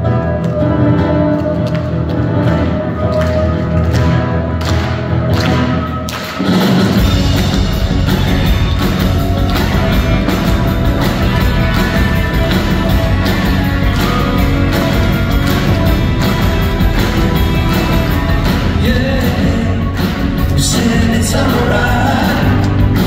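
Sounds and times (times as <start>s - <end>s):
acoustic guitar: 0.0s - 23.0s
live band playing: 0.0s - 23.0s.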